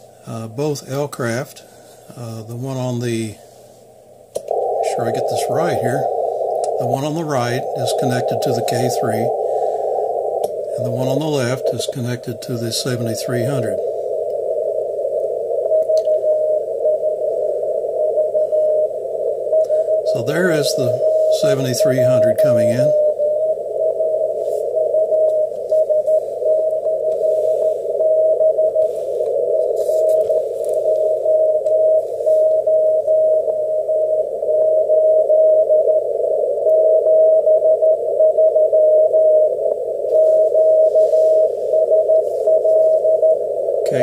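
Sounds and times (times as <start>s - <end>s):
radio hiss: 0.0s - 44.0s
morse code tone: 4.5s - 44.0s.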